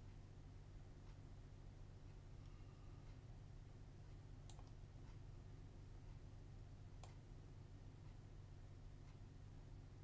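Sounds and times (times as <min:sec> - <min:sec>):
faint high whine: 0:00.0 - 0:10.0
low hum: 0:00.0 - 0:10.0
computer mouse clicks: 0:04.1 - 0:05.2, 0:07.0 - 0:07.2.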